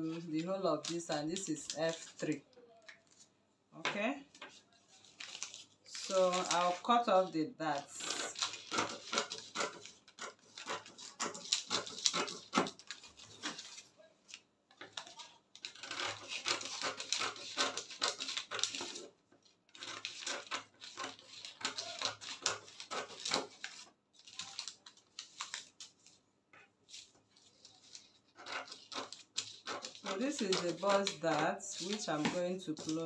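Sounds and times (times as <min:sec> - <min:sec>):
scissors snipping paper: 0:05.2 - 0:06.8, 0:07.7 - 0:26.1, 0:26.9 - 0:33.0.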